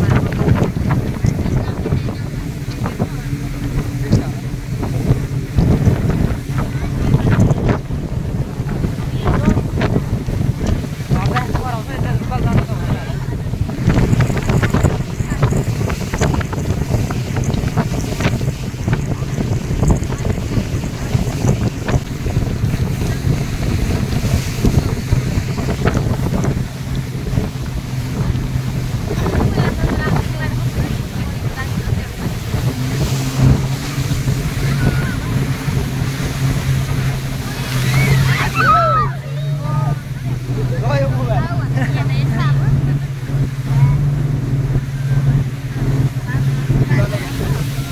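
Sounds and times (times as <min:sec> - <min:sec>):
motorboat engine drone: 0:00.0 - 0:47.9
rushing water: 0:00.0 - 0:47.9
wind buffeting microphone: 0:00.0 - 0:47.9.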